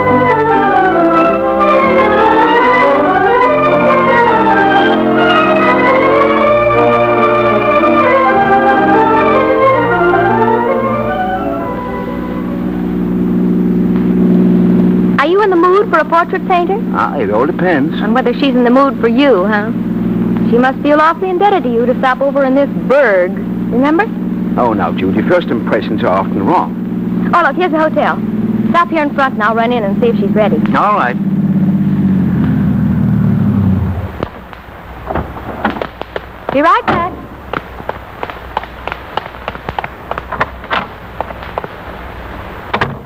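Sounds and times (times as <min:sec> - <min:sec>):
car engine running: 0:00.0 - 0:43.0.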